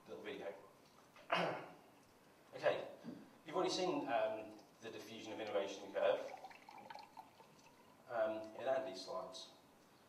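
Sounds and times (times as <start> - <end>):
man speaking: 2.6 - 6.4, 8.1 - 9.6.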